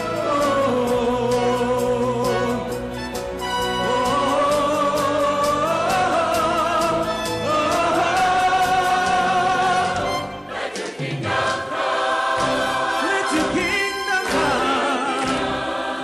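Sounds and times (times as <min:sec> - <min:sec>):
man singing with vibrato: 0:00.0 - 0:03.0, 0:03.8 - 0:10.2, 0:12.9 - 0:15.6
choir and orchestra music: 0:00.0 - 0:16.0.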